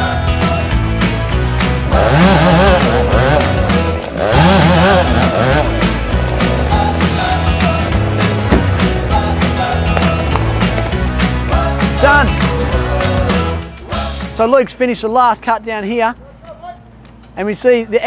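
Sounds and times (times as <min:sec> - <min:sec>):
background music: 0:00.0 - 0:17.3
chainsaw cutting tree trunk: 0:01.9 - 0:06.8.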